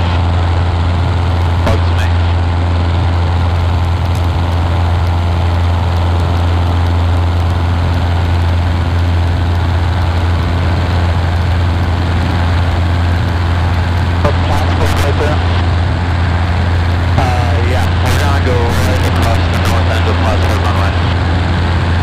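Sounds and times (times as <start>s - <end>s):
small plane engine and propeller droning: 0.0s - 22.0s.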